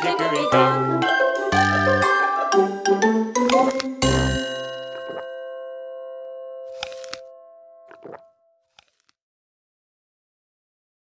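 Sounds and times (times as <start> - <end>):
children's song: 0.0 - 3.7.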